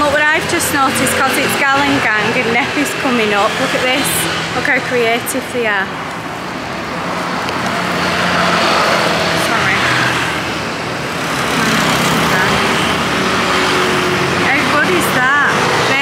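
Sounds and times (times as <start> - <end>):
motorbikes and cars passing: 0.0 - 16.0
road noise: 0.0 - 16.0.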